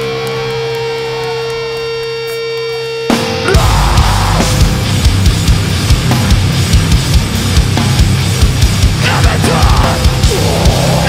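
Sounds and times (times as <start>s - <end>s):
band droning amplified chord: 0.0s - 11.0s
wavering higher guitar line: 0.0s - 11.0s.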